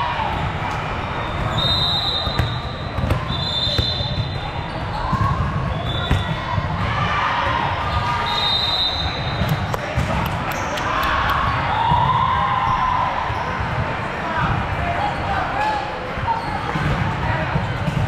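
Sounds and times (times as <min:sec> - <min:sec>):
chatter of people: 0:00.0 - 0:18.0
referee whistle blasts: 0:01.2 - 0:04.4, 0:05.7 - 0:06.4, 0:08.2 - 0:09.6
volleyballs hit and bouncing: 0:02.2 - 0:08.3, 0:09.0 - 0:12.8, 0:16.1 - 0:18.0.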